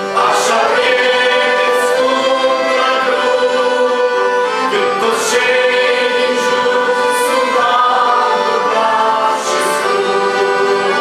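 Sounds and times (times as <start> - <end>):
accordions: 0.0 - 11.0
mixed voices singing a hymn: 0.0 - 11.0.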